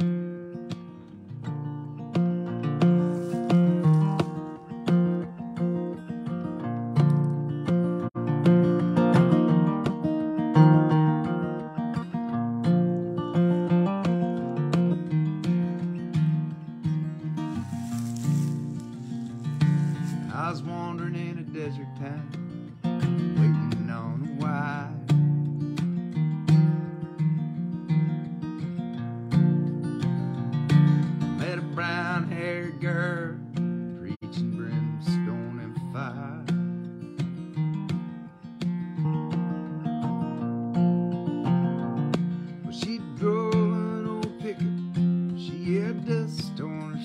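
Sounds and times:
acoustic guitar strumming: 0.0s - 47.0s.

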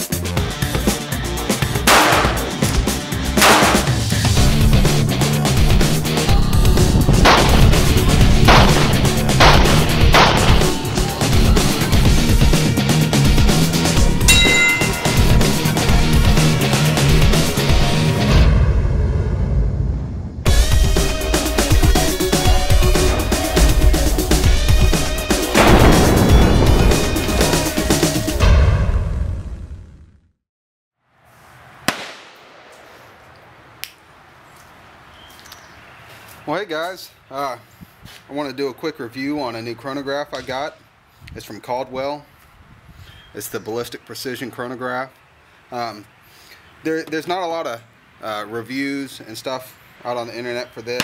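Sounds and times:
background music with low beat: 0.0s - 18.3s, 20.5s - 28.4s
gunshots: 1.8s - 2.6s, 3.4s - 4.1s, 7.2s - 7.8s, 8.5s - 10.8s, 25.6s - 27.2s, 31.9s - 32.8s.

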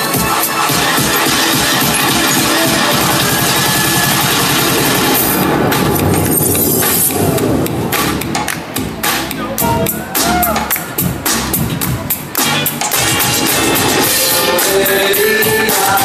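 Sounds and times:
loud dance music over speakers: 0.0s - 16.0s.

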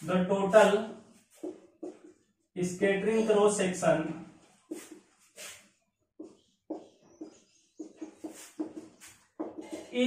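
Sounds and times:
marker squeaking on whiteboard: 1.2s - 2.4s, 4.4s - 10.0s.

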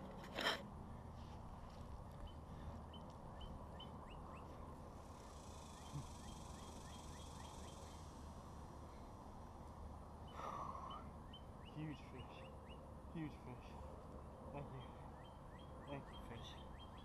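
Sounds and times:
bird chirping: 2.2s - 4.6s, 5.2s - 8.2s, 10.2s - 13.7s, 14.6s - 17.0s
insect buzz: 5.2s - 8.7s.

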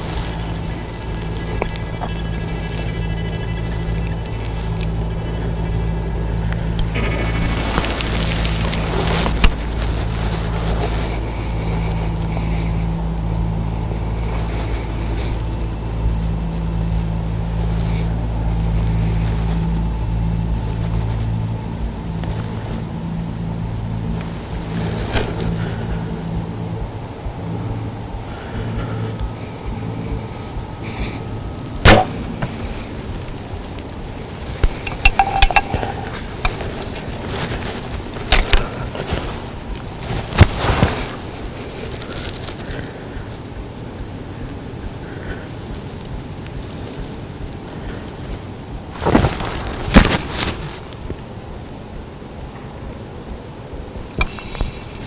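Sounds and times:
bow shot crack: 31.8s - 32.6s
rustles and knocks: 34.4s - 42.6s.

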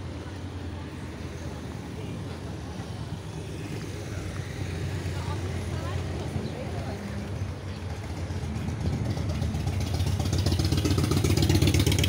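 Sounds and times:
faint distant voices: 0.0s - 12.0s
traffic engine rumble: 0.0s - 12.0s.

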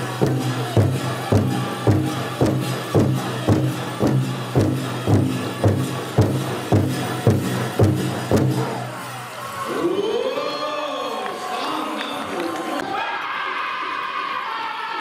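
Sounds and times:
big drum beating: 0.0s - 9.2s
crowd cheering and whooping: 0.0s - 15.0s.

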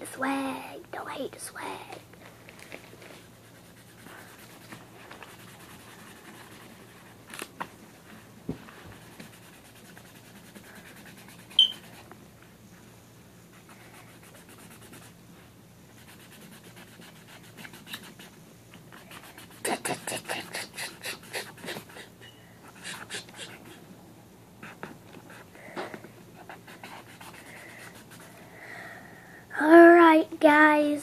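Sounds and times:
pen scratching on paper: 3.4s - 7.1s, 9.0s - 12.0s, 16.0s - 18.3s, 19.0s - 22.0s, 26.4s - 28.3s
high-pitched squeak: 11.6s - 11.8s.

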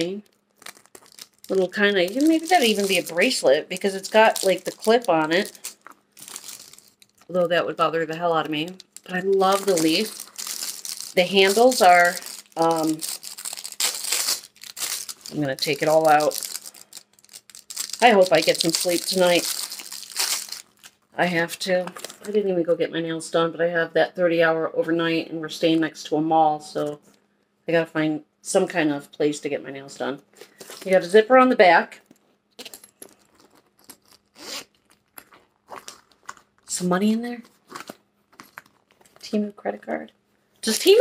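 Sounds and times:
packing material crinkling: 0.0s - 21.1s, 21.9s - 22.4s, 32.6s - 36.7s, 37.4s - 39.2s.

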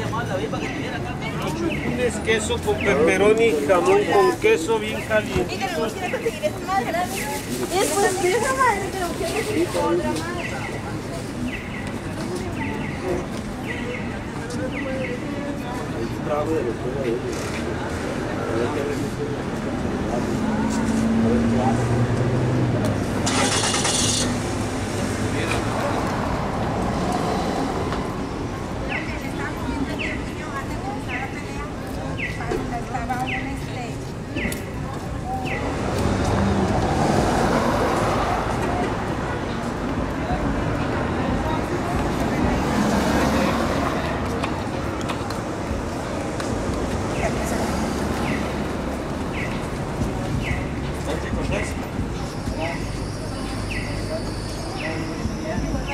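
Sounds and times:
traffic rumble: 0.0s - 55.9s.

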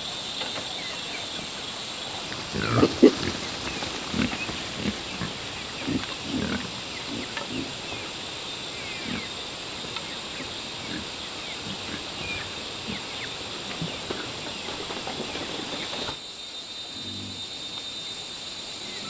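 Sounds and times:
pigs grunting: 2.2s - 14.4s, 17.0s - 17.5s.

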